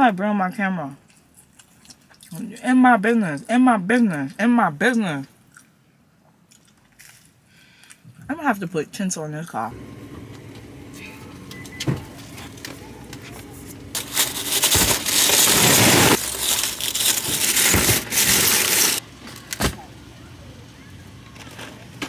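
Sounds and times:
items thumping down: 0:11.3 - 0:19.8
plastic packaging rustling: 0:12.2 - 0:19.6.

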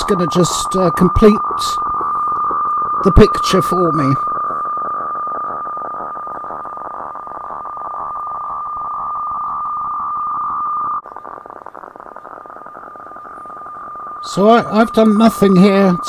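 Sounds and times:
radiofax whistling tone: 0:00.0 - 0:16.0.

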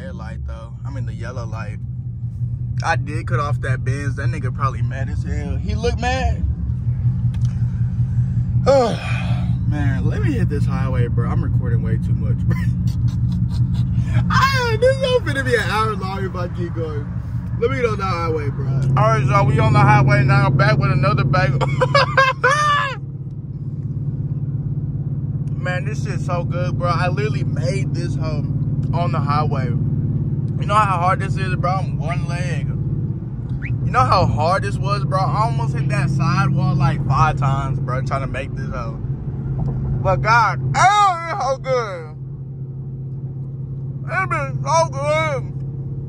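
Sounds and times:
car engine drone in cabin: 0:00.0 - 0:46.0
road noise: 0:00.0 - 0:46.0.

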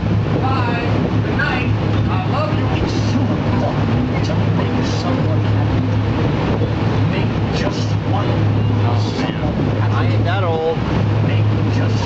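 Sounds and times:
boat engine droning: 0:00.0 - 0:12.0
faint passengers' voices: 0:00.0 - 0:12.0
rushing wind: 0:00.0 - 0:12.0
water noise: 0:00.0 - 0:12.0.

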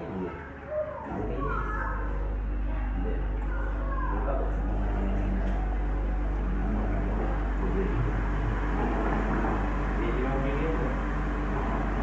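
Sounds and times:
pump motor rumbling: 0:01.0 - 0:12.0.

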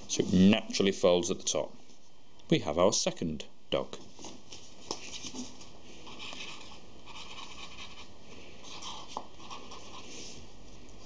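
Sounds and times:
marker pen scratching on card: 0:06.1 - 0:10.1.

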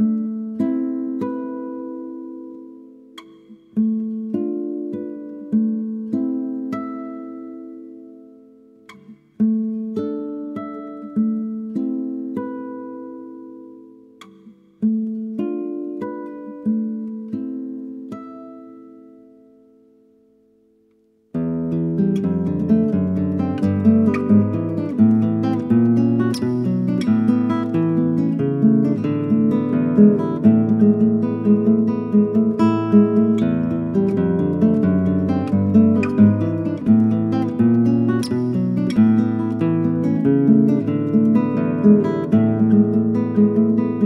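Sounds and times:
plucked acoustic guitar arpeggios: 0:00.0 - 0:44.0
fast strummed guitar chords: 0:21.4 - 0:44.0.

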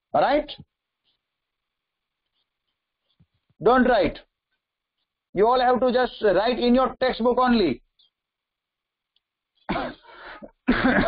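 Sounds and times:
man speaking: 0:00.1 - 0:00.7, 0:03.6 - 0:04.3, 0:05.3 - 0:07.8
man coughing: 0:09.7 - 0:11.0.

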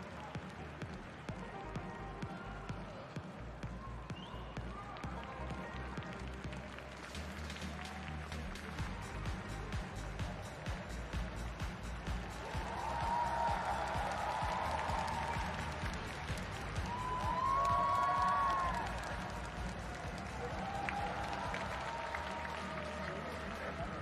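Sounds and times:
audience applauding: 0:00.0 - 0:24.0
audience clapping along: 0:00.0 - 0:24.0
music over sound system: 0:00.0 - 0:24.0.

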